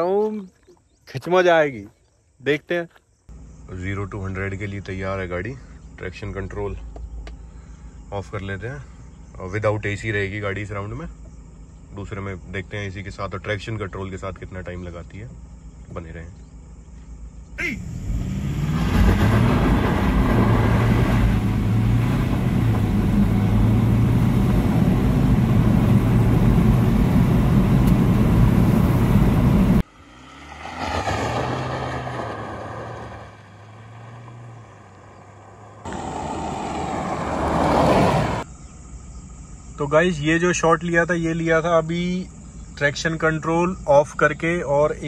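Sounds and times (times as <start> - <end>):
road and wind noise: 4.4 - 10.3, 15.0 - 39.8
car engine drone accelerating: 16.6 - 38.4
engine sound: 16.9 - 38.5.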